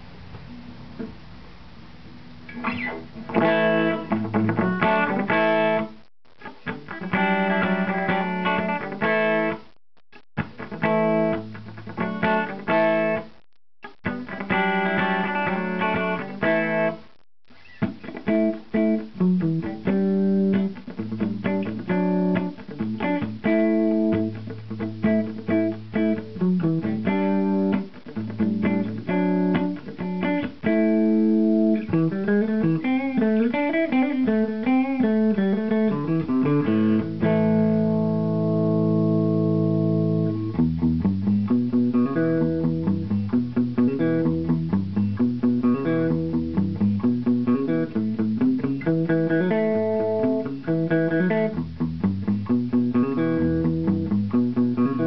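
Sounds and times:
electric guitar through tube amp: 0:02.5 - 0:09.7, 0:10.4 - 0:17.0, 0:17.7 - 0:55.0.

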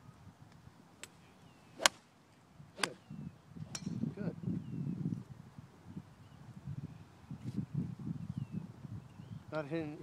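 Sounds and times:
golf club striking ball: 0:01.8 - 0:02.0, 0:02.8 - 0:04.1.

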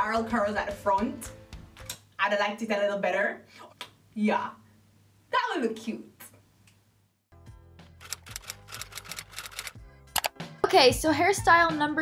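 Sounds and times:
background music: 0:00.0 - 0:02.1, 0:07.3 - 0:12.0.

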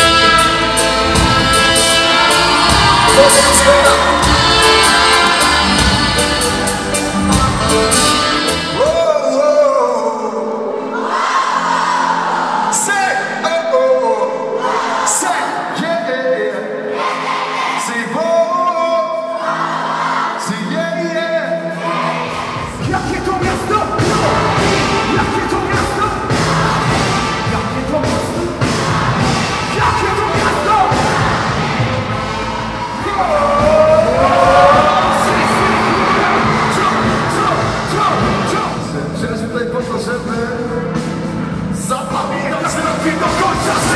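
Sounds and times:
crowd cheering: 0:00.0 - 0:08.9, 0:28.8 - 0:38.8
person singing: 0:00.0 - 0:11.0, 0:33.0 - 0:38.7
live band music: 0:00.0 - 0:13.5, 0:14.3 - 0:43.9
man singing into microphone: 0:01.5 - 0:06.2, 0:42.0 - 0:43.9.

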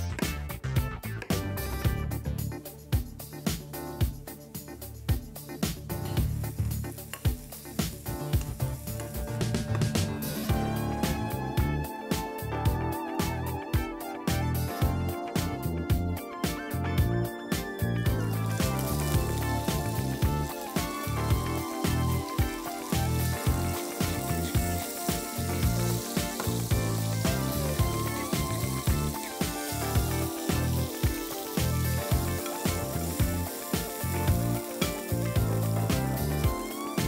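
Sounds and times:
music with steady beat: 0:00.0 - 0:37.0
mushrooms sizzling in oil: 0:06.1 - 0:11.7, 0:18.1 - 0:37.0
pepper mill grinding: 0:18.4 - 0:35.9.

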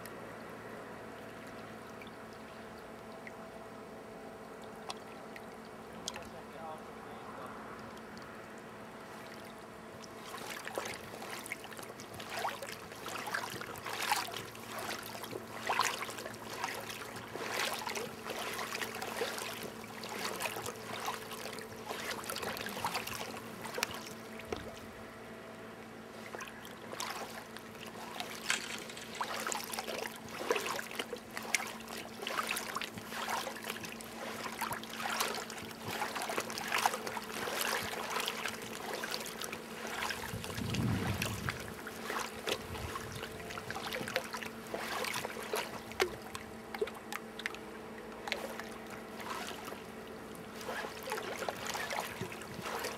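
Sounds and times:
river water lapping and trickling: 0:00.0 - 0:52.9
water splashing: 0:04.6 - 0:06.8, 0:09.0 - 0:25.0, 0:26.1 - 0:52.9.

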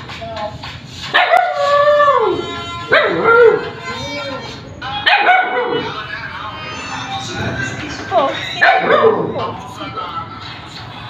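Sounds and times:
puppies howling whines: 0:01.2 - 0:06.1, 0:08.5 - 0:09.5.

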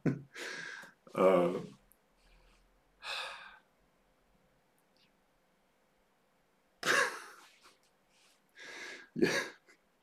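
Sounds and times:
man sighing: 0:03.0 - 0:03.6
man laughing: 0:06.8 - 0:07.5, 0:09.2 - 0:09.8.

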